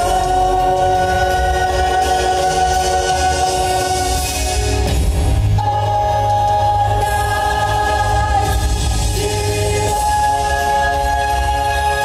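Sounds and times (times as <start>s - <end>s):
low bass accompaniment: 0.0s - 12.0s.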